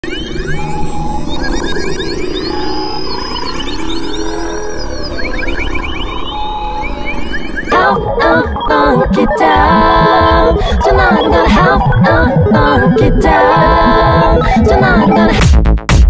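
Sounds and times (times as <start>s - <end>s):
synthesizer pitch sweeps: 0.0s - 15.4s
person singing: 7.7s - 15.5s.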